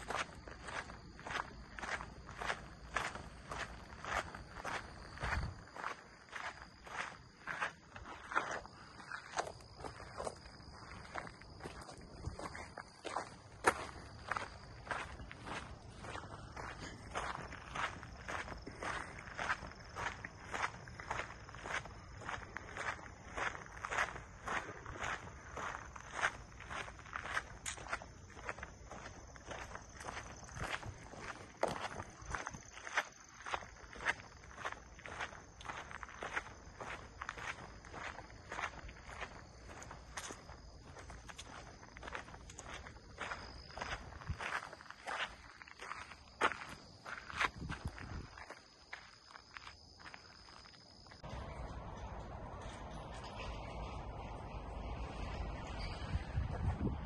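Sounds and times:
footsteps on dirt trail: 0.0 - 57.0.

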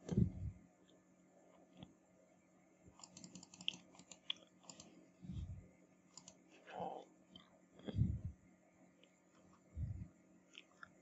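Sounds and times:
mouse and keyboard clicking: 3.0 - 4.9, 6.1 - 6.4.

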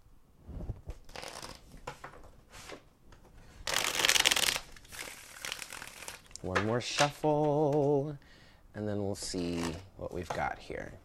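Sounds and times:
playing cards shuffled by hand: 0.8 - 2.8, 3.7 - 6.3, 9.4 - 9.9.

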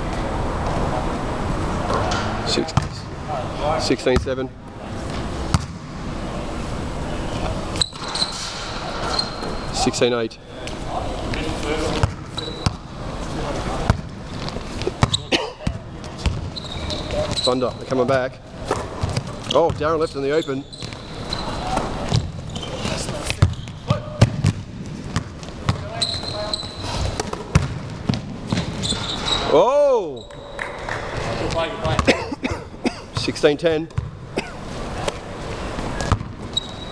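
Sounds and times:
indoor gym background: 0.0 - 36.9
basketball bouncing on court: 2.8 - 3.0, 5.5 - 5.9, 11.9 - 12.9, 13.8 - 17.5, 18.7 - 20.0, 22.0 - 26.4, 27.2 - 29.0, 31.5 - 32.2, 33.1 - 34.2, 36.0 - 36.7
short high squeak: 7.8 - 9.8, 16.6 - 17.8, 20.3 - 21.8, 25.9 - 27.0, 28.8 - 29.6, 36.5 - 36.9.

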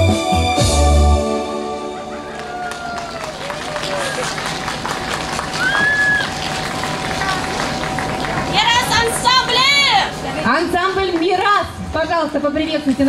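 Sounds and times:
voices calling out: 2.0 - 4.7
audience applauding: 2.0 - 10.0.

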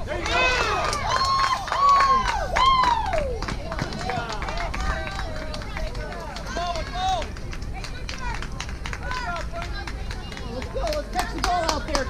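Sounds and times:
young voices shouting: 0.0 - 3.4, 4.0 - 7.3.

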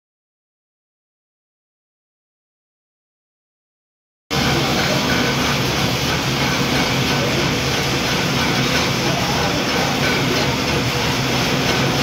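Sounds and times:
flour mill running: 4.3 - 12.0.

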